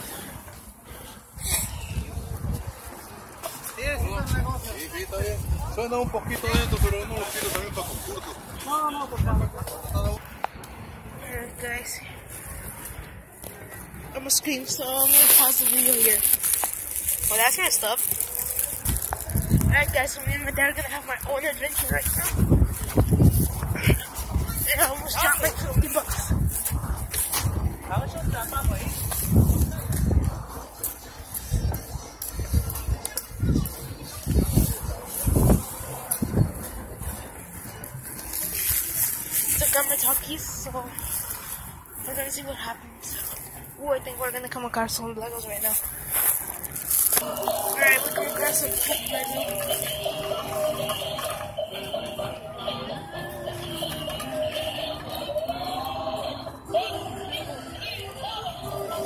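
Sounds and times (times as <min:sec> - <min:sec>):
background voices: 0:45.7 - 0:59.0.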